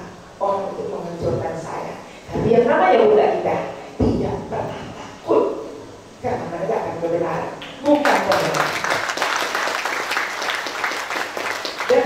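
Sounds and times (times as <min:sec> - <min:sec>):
woman speaking into microphone: 0:00.0 - 0:08.8.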